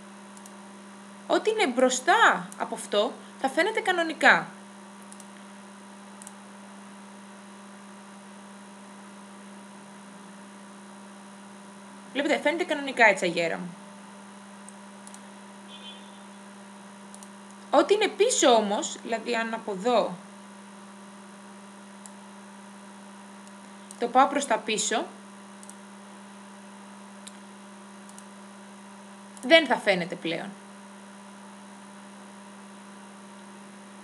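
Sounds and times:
electrical mains hum: 0.0 - 34.0
faint clicks: 0.4 - 0.6, 5.0 - 5.5, 6.2 - 6.4, 14.6 - 15.3, 17.1 - 17.7, 22.0 - 22.2, 23.4 - 24.0, 25.6 - 25.8, 27.2 - 28.3.

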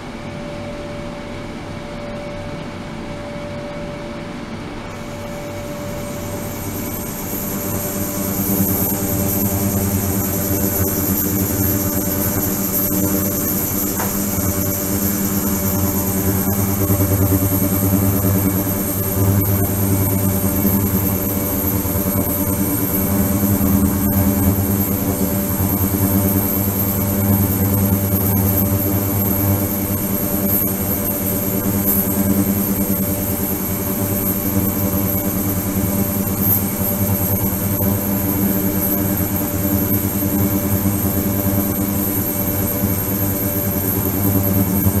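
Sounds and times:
high whine: 0.0 - 45.0
ultrasonic cleaner buzzing hum: 0.0 - 45.0.

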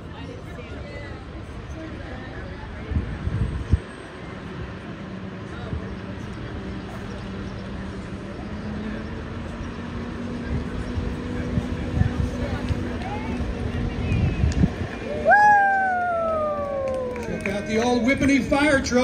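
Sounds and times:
crowd chatter: 0.0 - 19.0
fire engine hum: 0.0 - 19.0.

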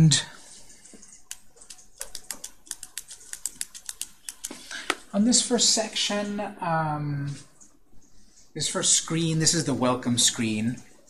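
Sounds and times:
typing on computer keyboard: 0.7 - 4.6.

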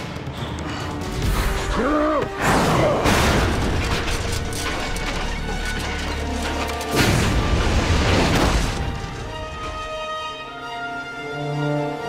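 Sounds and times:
dramatic music score: 0.0 - 12.0
metallic crashing and clattering: 3.0 - 9.8.

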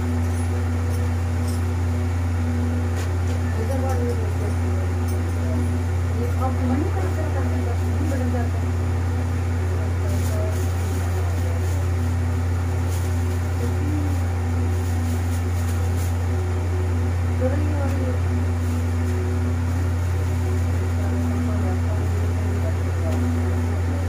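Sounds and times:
steady low hum: 0.0 - 24.0
faint voices murmuring: 2.8 - 24.0.

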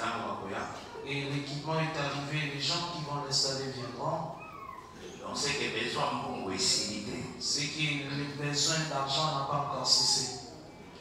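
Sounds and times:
man speaking: 0.0 - 4.4, 5.1 - 10.6.

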